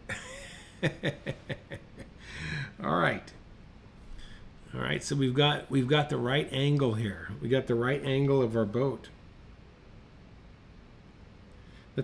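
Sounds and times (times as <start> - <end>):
man chuckling: 0.0 - 2.8
man speaking: 2.7 - 3.4, 4.7 - 9.2.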